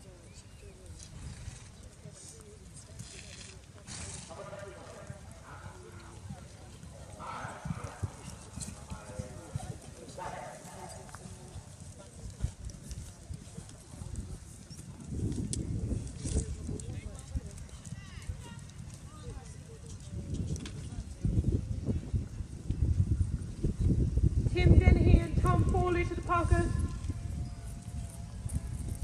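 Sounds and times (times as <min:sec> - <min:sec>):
distant voices: 0:00.0 - 0:14.0
hooves clip-clopping on gravel: 0:00.4 - 0:21.5, 0:25.3 - 0:29.0.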